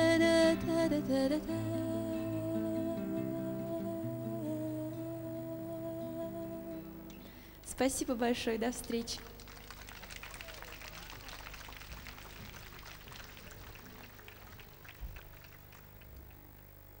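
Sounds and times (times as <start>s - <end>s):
audience applauding: 8.9s - 16.5s.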